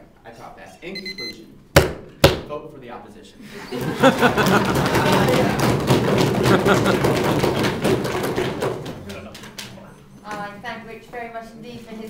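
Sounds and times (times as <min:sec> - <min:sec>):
audience knocking on wooden desks: 0:03.8 - 0:09.7.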